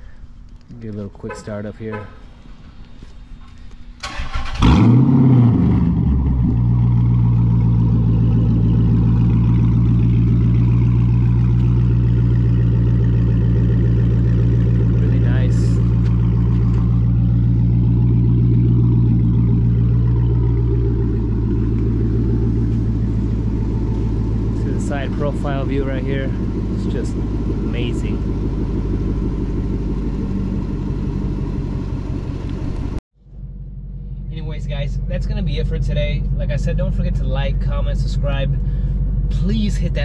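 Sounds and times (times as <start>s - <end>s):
car starter cranking: 4.0s - 5.0s
car engine revving and idling: 4.3s - 40.0s.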